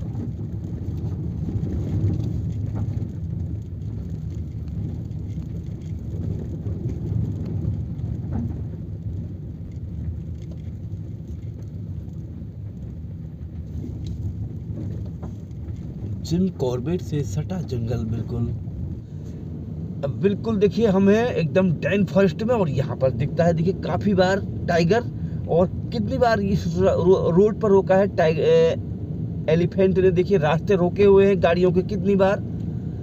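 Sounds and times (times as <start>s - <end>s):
car engine and road rumble: 0.0s - 33.0s.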